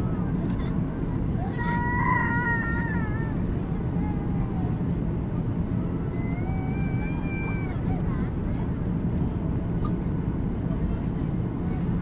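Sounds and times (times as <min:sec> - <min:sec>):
airplane cabin engine roar: 0:00.0 - 0:12.0.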